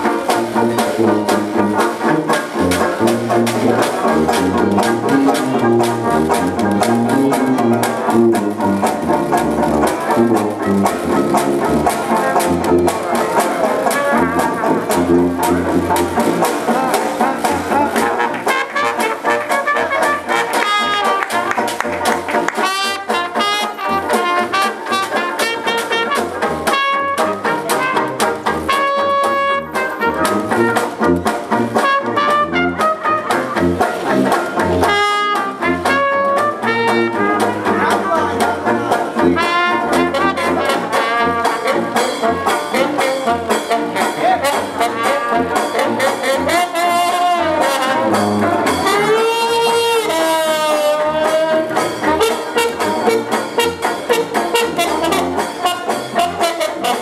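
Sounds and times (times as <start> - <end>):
sousaphone bass line: 0.0 - 21.2, 25.1 - 57.0
acoustic jazz band playing: 0.0 - 57.0.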